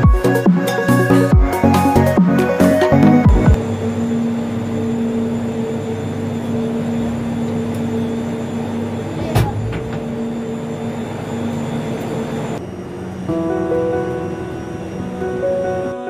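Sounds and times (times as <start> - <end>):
gondola machinery humming: 0.0 - 16.0.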